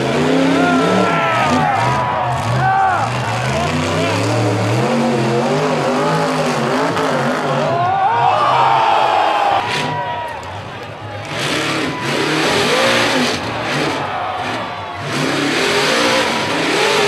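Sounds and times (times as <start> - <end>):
buggy engine revving hard: 0.0 - 10.0, 11.2 - 17.0.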